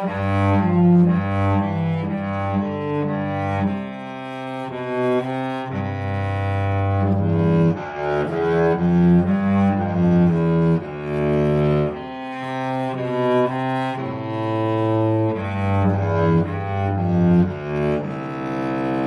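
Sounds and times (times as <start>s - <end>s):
solo cello bowed: 0.0s - 19.0s.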